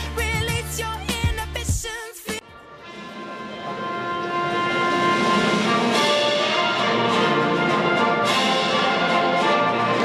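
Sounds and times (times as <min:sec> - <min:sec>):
orchestral brass chords: 0:02.5 - 0:10.0.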